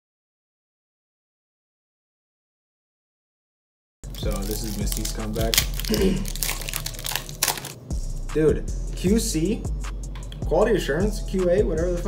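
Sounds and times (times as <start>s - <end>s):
foil wrapper crinkling: 4.1s - 7.8s.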